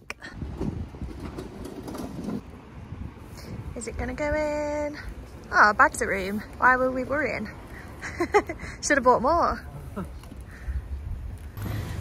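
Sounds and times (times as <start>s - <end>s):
metal trolley rattling over paving: 0.5s - 2.4s.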